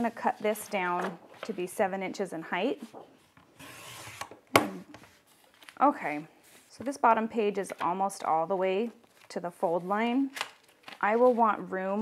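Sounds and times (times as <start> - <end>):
thick paper rustling: 5.0 - 6.8, 8.8 - 11.8.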